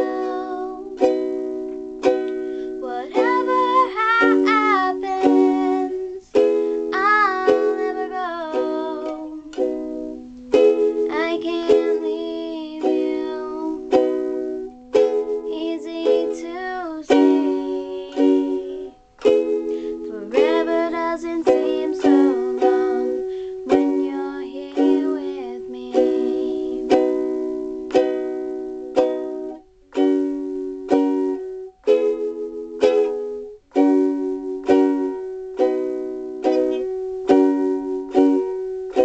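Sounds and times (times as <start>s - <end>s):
girl singing: 0.0s - 30.4s
ukulele strumming: 0.0s - 39.0s.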